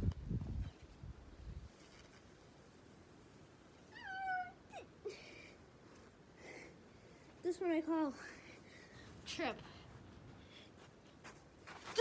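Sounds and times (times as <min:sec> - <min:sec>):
high-pitched meow-like cry: 0:03.9 - 0:04.9.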